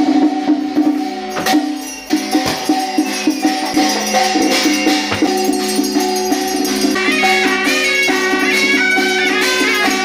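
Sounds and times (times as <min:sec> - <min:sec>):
rapid rattling percussion: 0:00.6 - 0:10.0.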